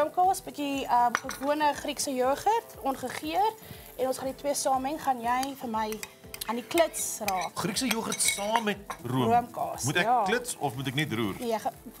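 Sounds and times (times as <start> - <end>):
ceramic bowls and spoons clinking: 1.0 - 1.6, 5.4 - 9.2.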